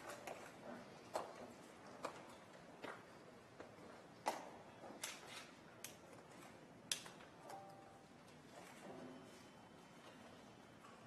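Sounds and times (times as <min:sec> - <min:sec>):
faint steady tone: 0:07.4 - 0:08.2.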